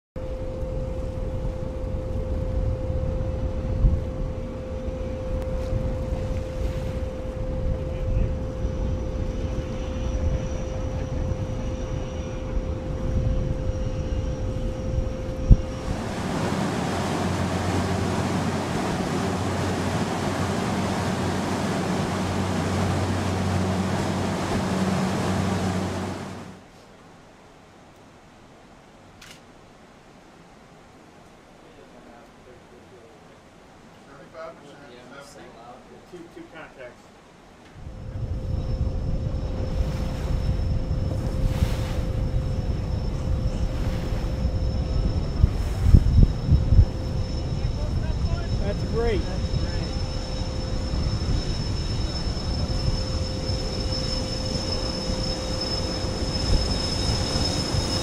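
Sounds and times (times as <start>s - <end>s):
wind rumbling over microphone: 0.2s - 26.6s, 37.8s - 58.0s
boat engine noise: 0.2s - 26.7s, 37.8s - 58.0s
steady hum: 0.2s - 26.7s, 37.8s - 58.0s
rush of spray: 15.7s - 26.9s.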